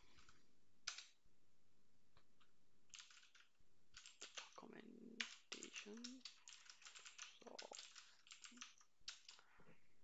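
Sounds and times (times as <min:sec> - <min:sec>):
typing on computer keyboard: 0:00.9 - 0:01.2, 0:02.9 - 0:04.6, 0:05.2 - 0:09.4.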